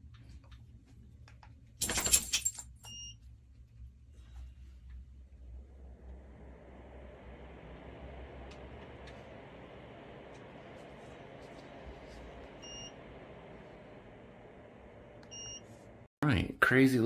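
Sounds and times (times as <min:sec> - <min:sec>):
ceiling fan air rush: 0:03.8 - 0:16.1.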